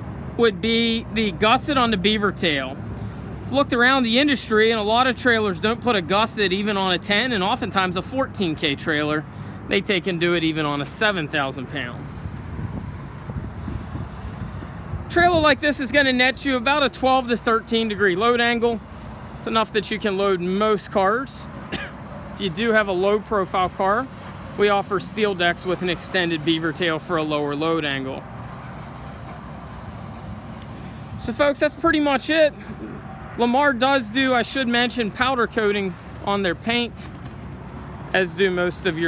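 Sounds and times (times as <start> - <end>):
road traffic: 0.0 - 39.0
wind buffeting microphone: 12.0 - 16.1.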